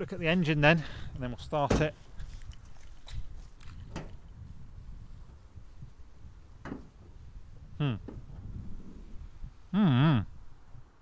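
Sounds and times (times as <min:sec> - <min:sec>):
microphone handling rumble: 0:01.1 - 0:10.8
car bonnet knocks and clicks: 0:06.6 - 0:07.0.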